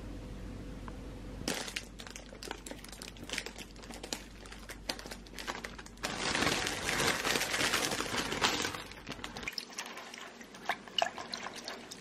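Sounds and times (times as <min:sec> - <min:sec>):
steady low hum: 0:00.0 - 0:12.0
plastic bag crinkling: 0:01.4 - 0:12.0.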